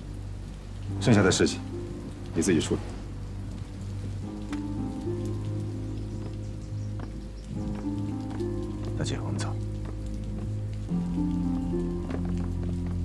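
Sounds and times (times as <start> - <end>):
low held drama score notes: 0.0 - 13.0
steady hiss: 0.0 - 13.0.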